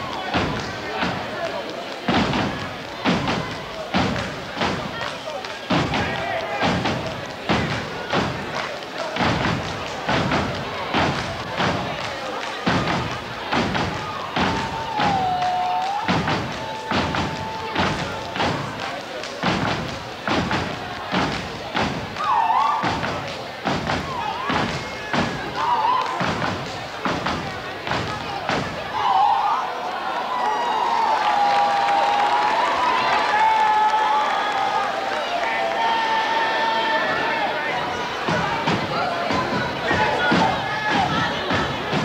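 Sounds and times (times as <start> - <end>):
voices chanting: 0.0 - 29.9, 35.2 - 42.0
stomping and clapping: 0.0 - 42.0.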